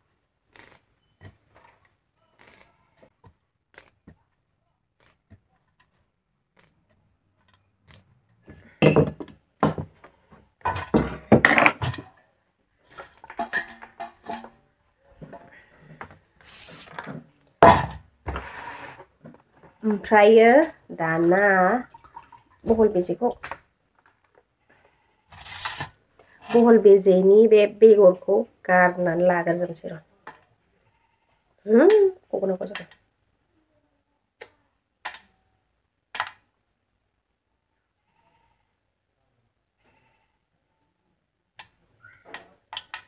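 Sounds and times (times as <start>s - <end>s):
metal jar and lid clattering: 13.0s - 14.6s
dry rustling scrape of sponge gourd: 18.3s - 19.2s, 25.3s - 26.7s.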